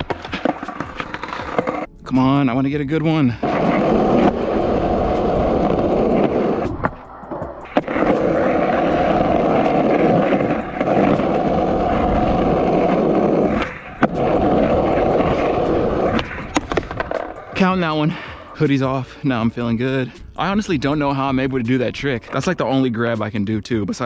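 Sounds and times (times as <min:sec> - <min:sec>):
skateboard wheels rolling on concrete: 0:00.0 - 0:23.4.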